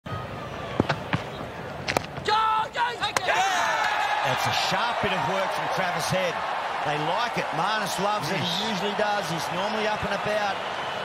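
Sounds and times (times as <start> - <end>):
players shouting appeals: 2.2 - 11.0
crowd cheering: 2.3 - 11.0.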